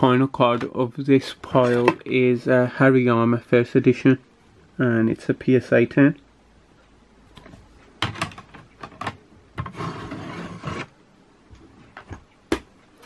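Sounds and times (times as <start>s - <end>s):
plastic rubbing and sliding: 9.6s - 11.0s.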